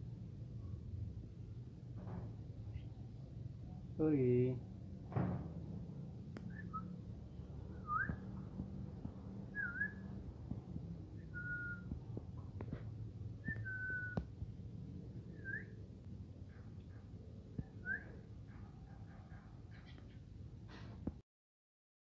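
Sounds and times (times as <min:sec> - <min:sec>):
soft whistled notes: 0:06.4 - 0:07.0, 0:07.7 - 0:08.3, 0:09.5 - 0:10.2, 0:11.2 - 0:11.9, 0:13.4 - 0:14.2, 0:15.3 - 0:15.8.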